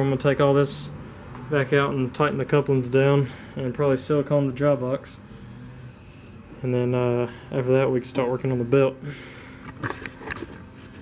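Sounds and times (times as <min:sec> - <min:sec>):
camera handling knocks and rustles: 0:09.6 - 0:10.6.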